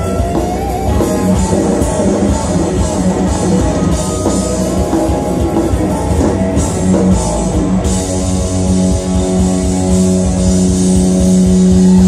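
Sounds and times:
distorted electric guitars: 0:00.0 - 0:12.0
drums: 0:00.0 - 0:12.0.

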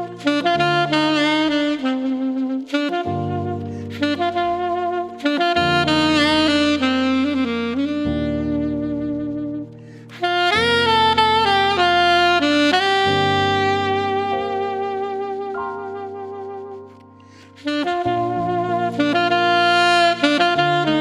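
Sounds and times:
alto saxophone melody: 0:00.0 - 0:21.0
backing track of sustained chords: 0:15.6 - 0:17.4.

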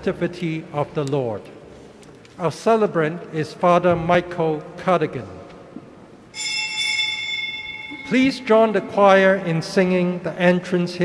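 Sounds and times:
small metal bell ringing: 0:06.3 - 0:08.7.

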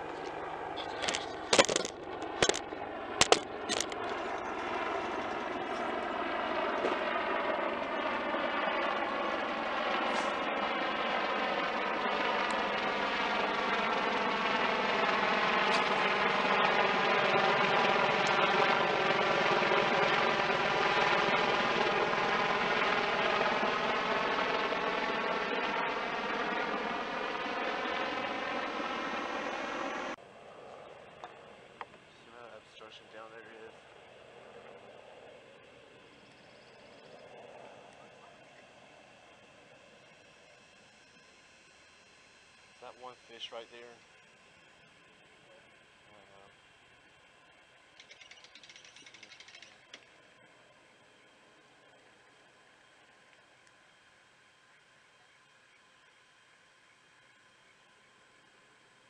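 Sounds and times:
aircraft passing overhead: 0:00.0 - 0:55.8
sharp clicks: 0:01.0 - 0:04.1.

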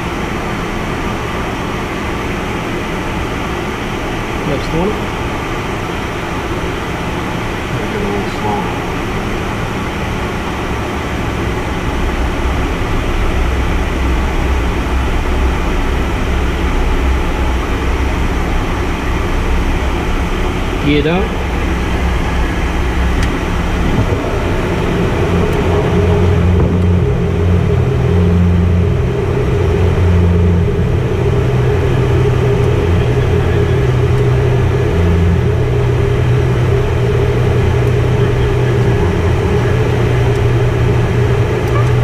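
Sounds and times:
engine drone: 0:00.0 - 0:42.0
steady low hum: 0:00.0 - 0:42.0
airflow rushing: 0:03.7 - 0:42.0.

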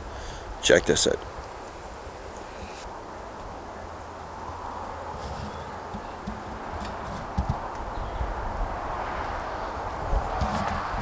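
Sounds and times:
wind in trees: 0:00.0 - 0:11.0.

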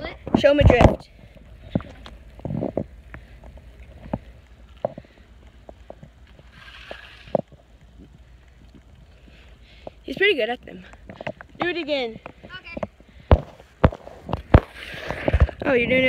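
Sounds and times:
wind rumbling on microphone: 0:12.2 - 0:16.0.

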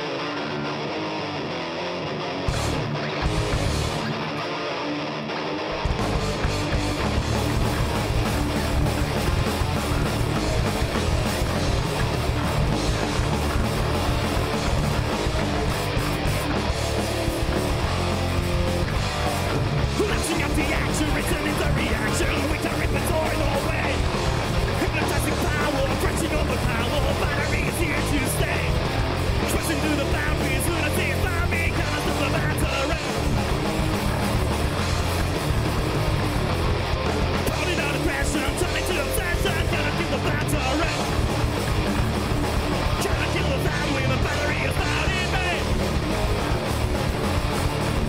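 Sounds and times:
heavy metal band playing: 0:00.0 - 0:48.0
person singing: 0:19.9 - 0:24.1, 0:24.8 - 0:28.8, 0:29.4 - 0:33.2, 0:37.5 - 0:41.2, 0:42.9 - 0:45.8.

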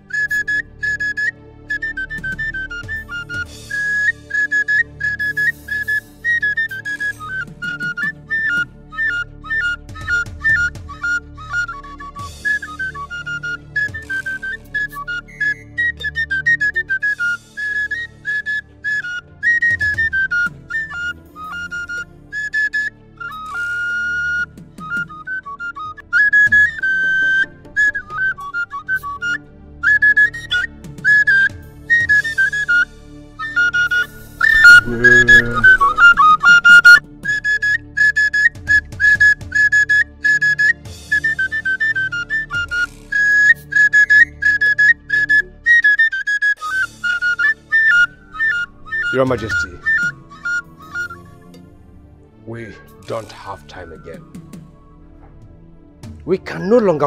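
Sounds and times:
low steady backing music: 0:00.0 - 0:46.0, 0:46.6 - 0:57.0
flute melody: 0:00.0 - 0:57.0.

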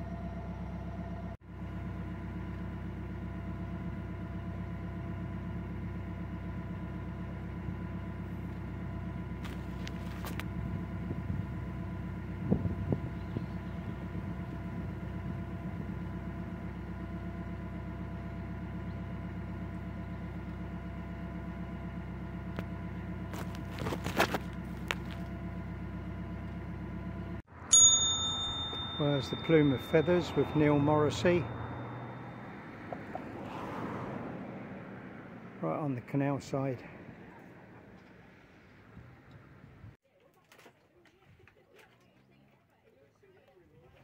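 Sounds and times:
diesel boat engine running: 0:00.0 - 0:40.0
branches rustling against boat: 0:09.4 - 0:10.4, 0:23.3 - 0:25.3
bright chime: 0:27.7 - 0:32.8.

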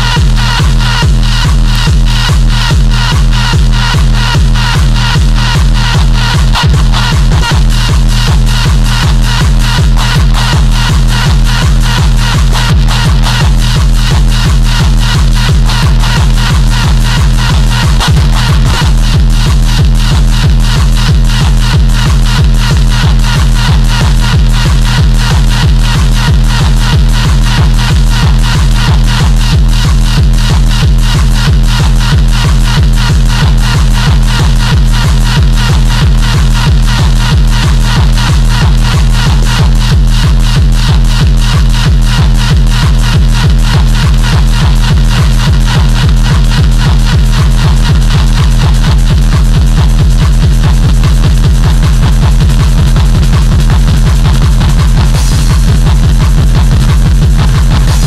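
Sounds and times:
drum and bass track: 0:00.0 - 0:58.0.

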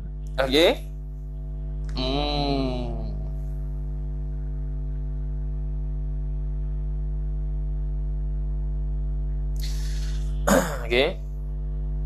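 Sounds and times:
electrical mains hum: 0:00.0 - 0:12.0
short breath-like hiss: 0:09.6 - 0:10.2.

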